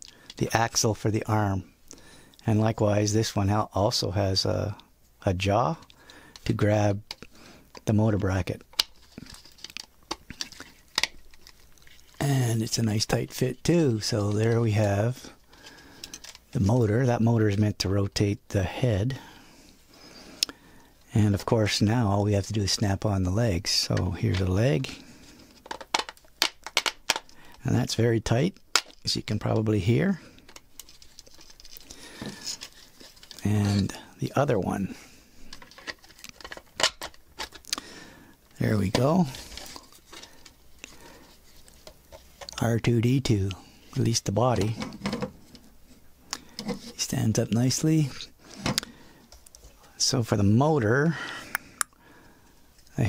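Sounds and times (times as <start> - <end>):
plastic parts clicking and scraping: 5.8 - 7.9, 8.5 - 18.2, 23.8 - 27.7, 28.6 - 42.7, 43.5 - 49.9
plastic clicks and creaks: 8.6 - 12.2, 15.5 - 16.5, 25.5 - 27.6, 35.4 - 37.8.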